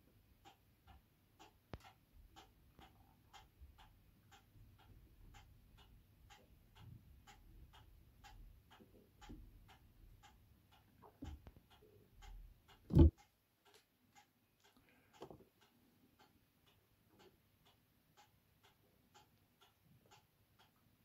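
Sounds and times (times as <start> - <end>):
clock ticking: 0.0 - 21.0
sharp click: 12.9 - 13.2.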